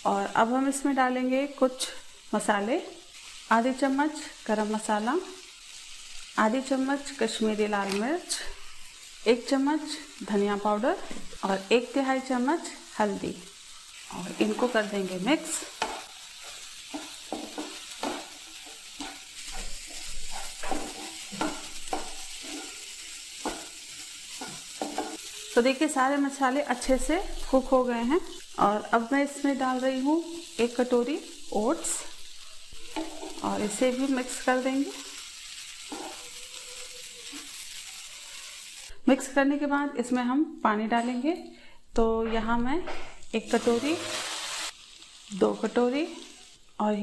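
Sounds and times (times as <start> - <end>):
low sizzle: 0.0 - 39.8, 42.6 - 47.0
spatula scraping frying pan: 13.6 - 25.4, 32.2 - 38.7, 43.6 - 44.7.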